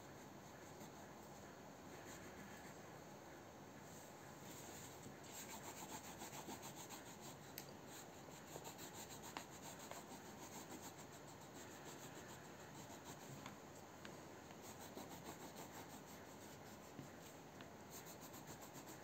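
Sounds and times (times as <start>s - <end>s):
crayon rubbing on paper: 4.8s - 13.5s, 14.5s - 19.0s.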